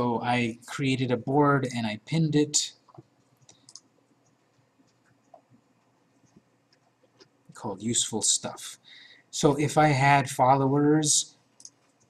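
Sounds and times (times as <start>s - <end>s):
computer mouse clicks: 2.8s - 7.4s, 11.6s - 12.0s.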